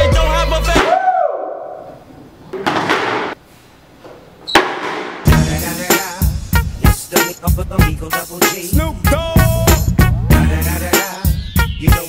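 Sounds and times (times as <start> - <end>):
sharp knock: 4.5 - 5.3.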